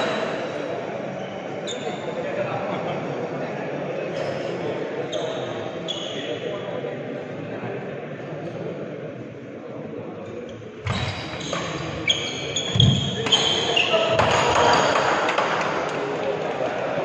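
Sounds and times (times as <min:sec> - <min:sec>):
crowd voices: 0:00.0 - 0:17.0
shoe squeaks: 0:01.2 - 0:02.1, 0:05.1 - 0:06.5, 0:10.5 - 0:15.0.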